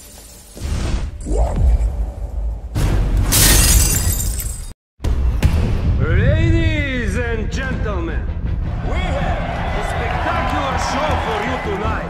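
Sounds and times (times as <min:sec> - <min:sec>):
glass breaking: 0:03.3 - 0:04.8.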